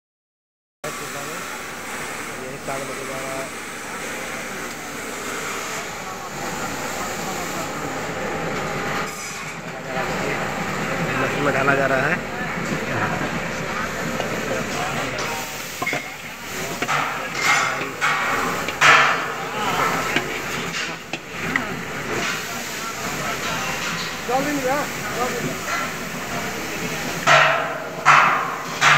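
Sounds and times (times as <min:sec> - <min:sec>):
steady mechanical noise: 0:00.8 - 0:28.9
people talking: 0:00.9 - 0:01.5, 0:02.2 - 0:28.9
machine knocks: 0:27.2 - 0:28.9.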